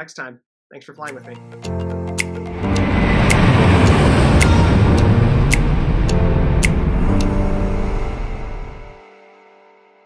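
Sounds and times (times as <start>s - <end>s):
music with sharp beat: 1.1s - 7.7s
jet airliner passing overhead: 2.5s - 9.0s.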